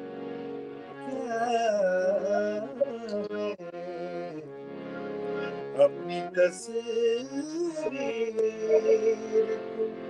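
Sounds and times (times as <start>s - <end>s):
man singing: 1.1s - 4.5s, 5.7s - 10.0s.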